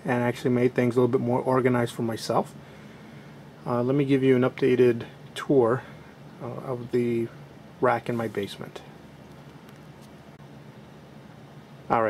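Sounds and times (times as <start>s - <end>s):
server cooling fans humming: 0.0s - 12.0s.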